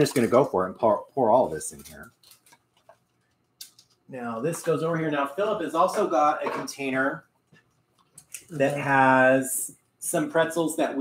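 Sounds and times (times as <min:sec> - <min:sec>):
light clicks and ticks: 0:01.6 - 0:04.1.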